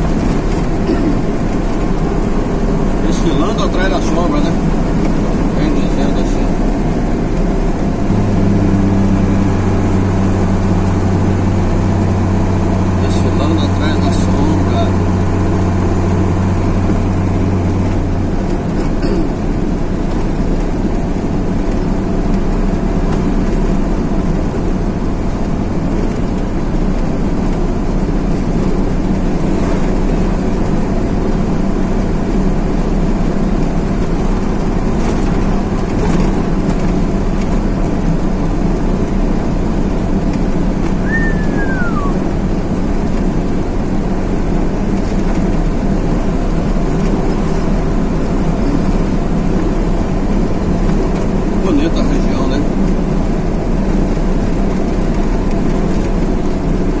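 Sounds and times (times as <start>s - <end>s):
truck engine running: 0.0s - 57.0s
tyre and road noise: 0.0s - 57.0s.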